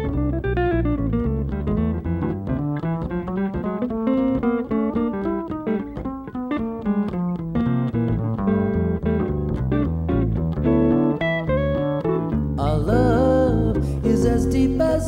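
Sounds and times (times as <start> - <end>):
jazz electric guitar solo: 0.0 - 15.0
upright double bass: 0.0 - 15.0.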